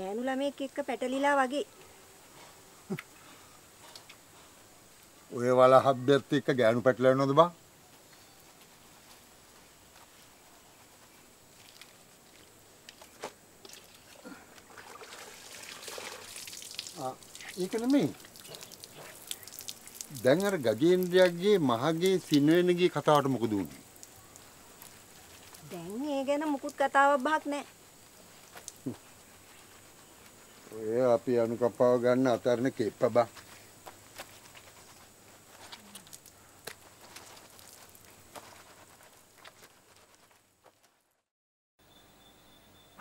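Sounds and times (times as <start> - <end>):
person speaking: 16.9 - 18.2.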